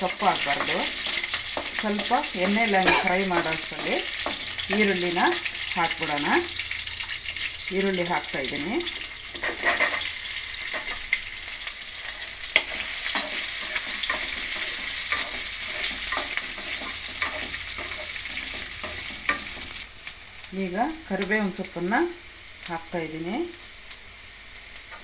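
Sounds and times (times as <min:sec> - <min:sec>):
onions sizzling in hot oil: 0:00.0 - 0:25.0
metal spoon scraping pan: 0:00.2 - 0:06.4, 0:08.9 - 0:11.2, 0:12.1 - 0:19.8.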